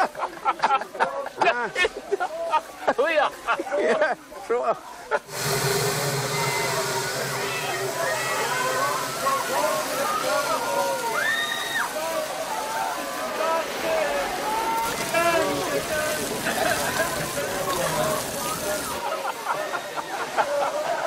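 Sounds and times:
fire hoses spraying water: 0:05.3 - 0:21.0.

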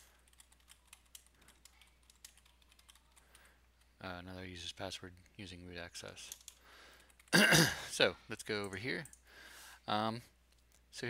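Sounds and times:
computer keyboard typing: 0:00.0 - 0:03.9, 0:06.2 - 0:07.4, 0:08.5 - 0:09.2.

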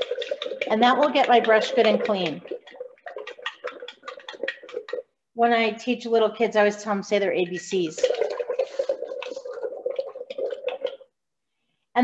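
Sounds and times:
paintbrush sloshing in water jar: 0:00.0 - 0:05.2, 0:07.4 - 0:11.1.

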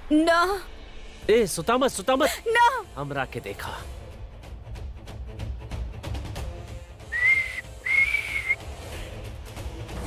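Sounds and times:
person whistling two notes: 0:07.0 - 0:08.6.

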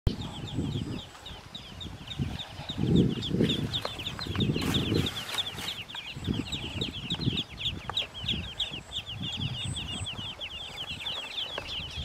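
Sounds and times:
ducklings peeping: 0:00.1 - 0:12.0.

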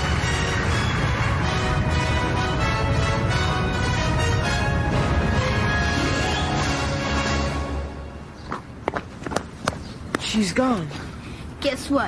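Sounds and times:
quick footsteps on asphalt: 0:08.4 - 0:11.0.

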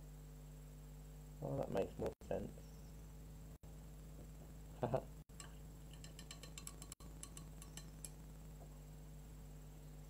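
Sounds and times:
steady low hum: 0:00.0 - 0:10.0
faint light clicks and clinks: 0:05.4 - 0:08.2.

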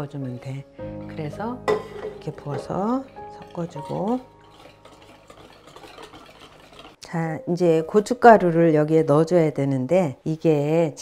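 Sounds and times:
whisk swishing wet mash: 0:01.0 - 0:07.0.

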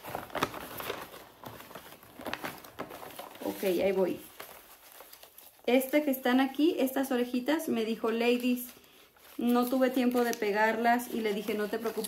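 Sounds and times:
paper rustling and crinkling: 0:00.0 - 0:06.6, 0:08.0 - 0:12.0.

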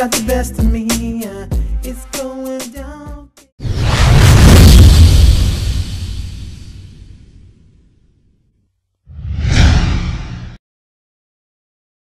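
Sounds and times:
transition whoosh: 0:03.6 - 0:07.6, 0:09.1 - 0:10.6
deep rumble: 0:03.7 - 0:07.6, 0:09.2 - 0:10.6.

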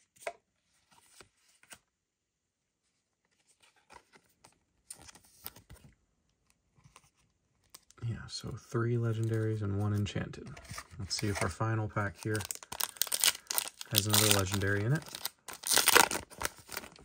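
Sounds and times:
plastic card sleeve crinkling: 0:09.0 - 0:17.0.

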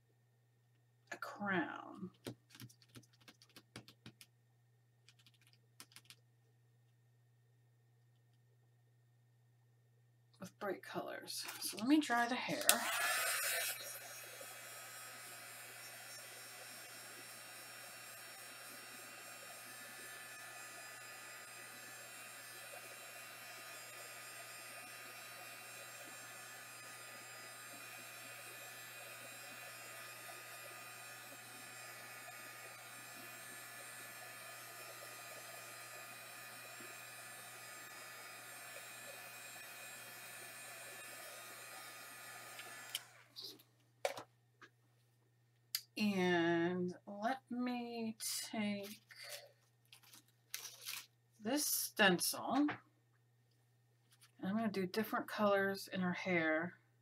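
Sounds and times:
hot-air dryer running: 0:11.6 - 0:43.6.

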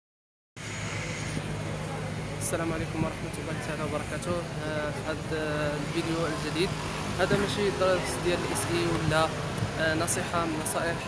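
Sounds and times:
street traffic: 0:00.6 - 0:11.0.

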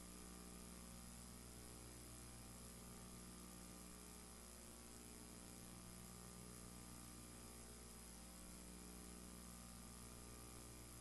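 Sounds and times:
faint mains hum: 0:00.0 - 0:11.0.

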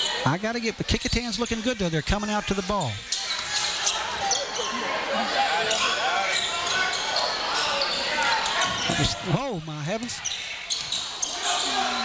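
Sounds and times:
spectator chatter: 0:00.0 - 0:12.0.

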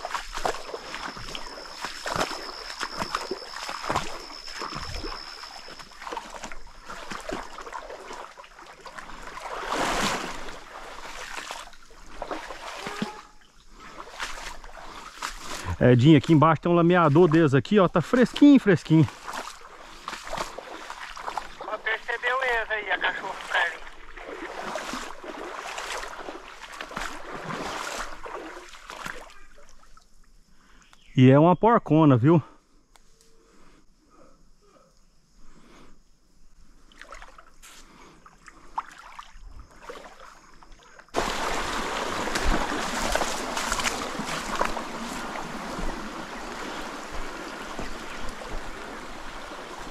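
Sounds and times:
boots splashing through stream: 0:00.0 - 0:30.0, 0:36.9 - 0:49.9
footsteps sloshing through water: 0:00.0 - 0:30.5, 0:36.6 - 0:49.9.

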